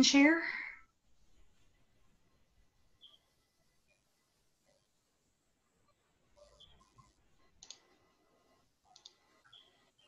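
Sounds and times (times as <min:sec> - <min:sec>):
faint computer mouse clicks: 0:07.6 - 0:07.9, 0:08.9 - 0:09.3.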